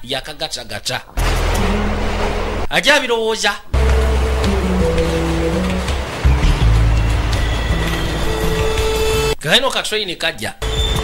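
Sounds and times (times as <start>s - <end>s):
subway train rumbling past: 1.2s - 2.7s, 3.8s - 9.4s
background music sustained notes: 3.8s - 9.4s.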